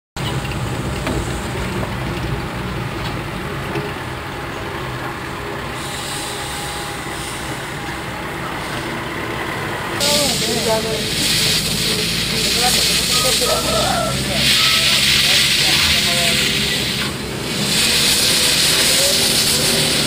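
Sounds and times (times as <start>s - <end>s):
low engine rumble: 0.2s - 20.0s
hiss: 5.7s - 7.8s, 10.0s - 20.0s.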